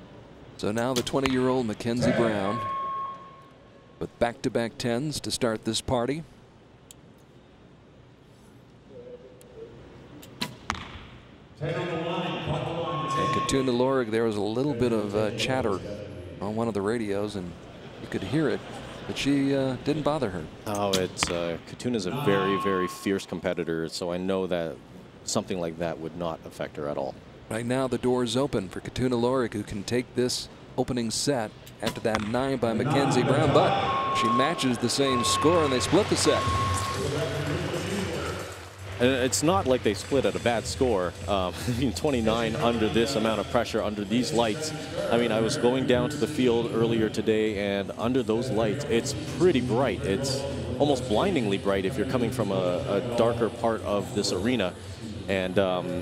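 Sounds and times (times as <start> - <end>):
arena hall noise: 0.0 - 6.2, 8.2 - 56.0
echoing public address voice: 0.6 - 3.1, 11.6 - 16.7, 19.8 - 23.4, 31.8 - 40.8.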